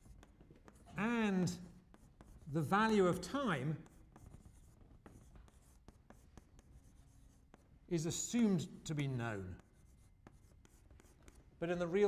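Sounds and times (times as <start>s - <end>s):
chalk scratching on blackboard: 0.0s - 11.6s.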